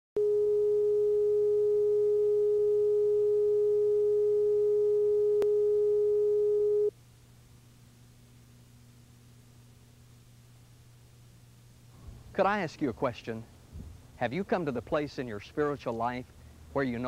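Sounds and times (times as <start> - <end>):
tape hum and hiss: 0.2 - 17.0.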